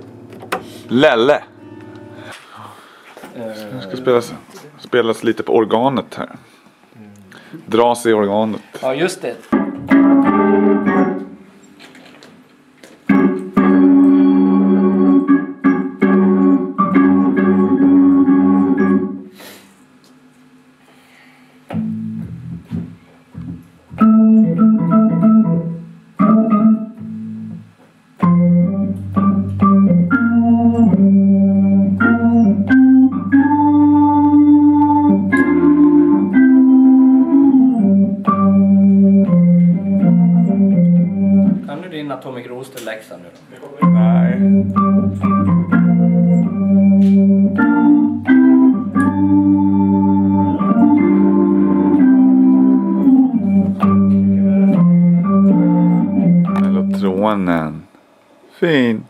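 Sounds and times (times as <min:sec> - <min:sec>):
organ chords: 0:00.0 - 0:03.0, 0:09.5 - 0:19.6, 0:21.7 - 0:41.8, 0:43.8 - 0:57.9.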